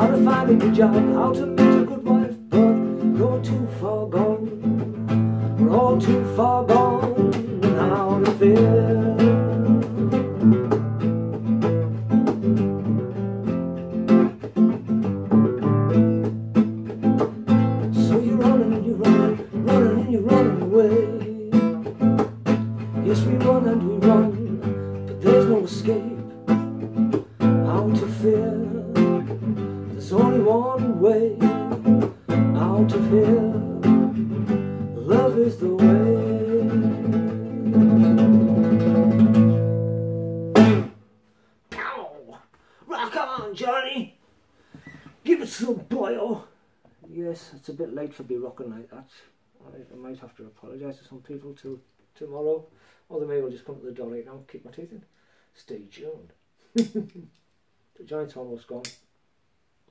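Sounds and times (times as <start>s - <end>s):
man singing wordlessly: 0.0s - 10.5s, 17.8s - 22.2s, 22.8s - 38.1s, 41.7s - 44.1s
classical guitar strumming chords: 0.0s - 41.1s.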